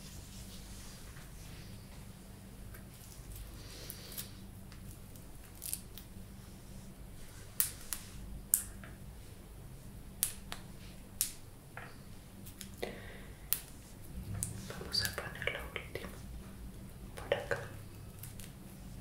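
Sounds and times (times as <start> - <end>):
faint low room hum: 0.0 - 19.0.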